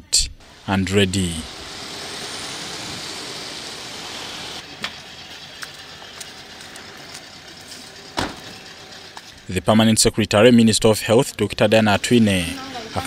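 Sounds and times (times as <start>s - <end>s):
background hiss: 0.0s - 4.6s
car tyres hissing on wet road: 0.5s - 4.6s.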